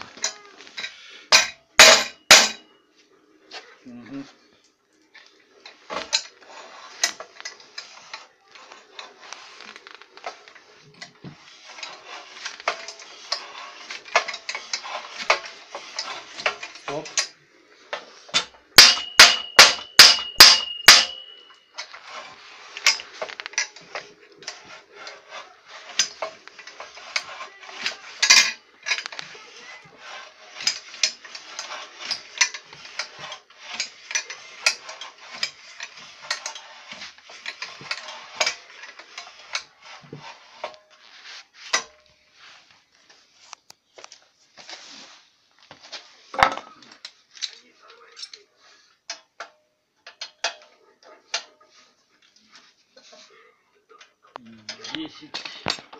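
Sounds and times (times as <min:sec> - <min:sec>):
metal clicks and rubbing: 0:05.6 - 0:29.4
ringing metal strikes: 0:18.8 - 0:21.6.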